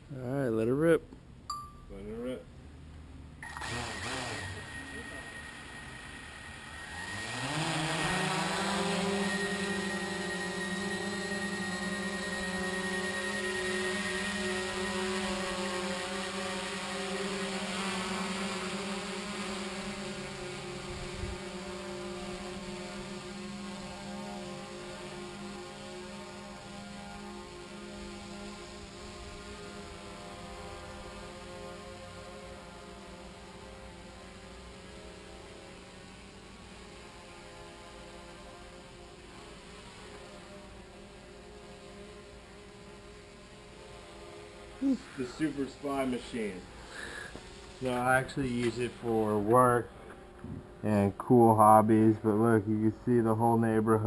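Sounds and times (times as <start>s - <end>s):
drone propellers buzzing: 3.4s - 54.0s.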